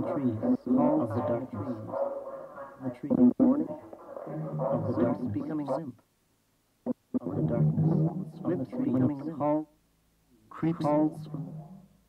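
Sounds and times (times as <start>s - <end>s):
layered gliding voice fragments: 0.0s - 5.9s, 6.9s - 9.3s, 10.6s - 12.0s.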